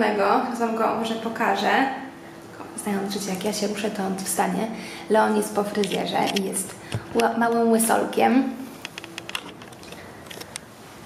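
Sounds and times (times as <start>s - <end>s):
phone handling clicks and rustles: 8.8s - 10.7s.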